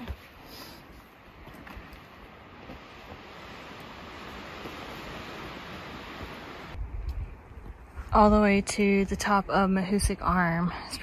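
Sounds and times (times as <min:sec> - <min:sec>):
wind rushing through forest: 0:00.0 - 0:11.0
wind buffeting microphone: 0:03.1 - 0:11.0.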